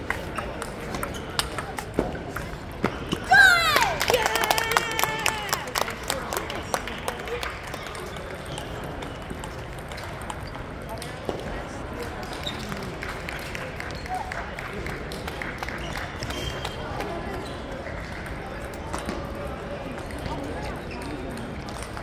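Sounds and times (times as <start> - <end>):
table tennis balls clicking: 8.0 - 11.4.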